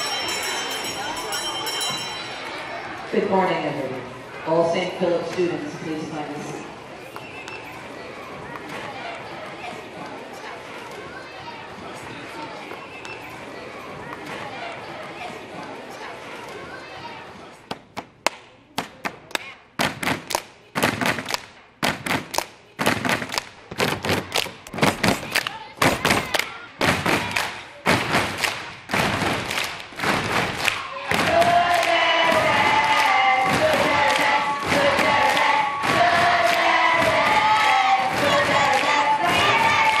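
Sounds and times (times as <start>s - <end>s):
hands clapping: 17.7s - 40.0s
children singing together: 31.0s - 40.0s.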